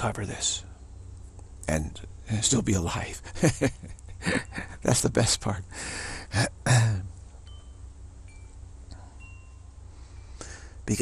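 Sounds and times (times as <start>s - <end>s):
low steady hum: 0.0s - 11.0s
man laughing: 3.2s - 5.0s, 6.1s - 7.1s
faint wind chimes: 4.2s - 11.0s.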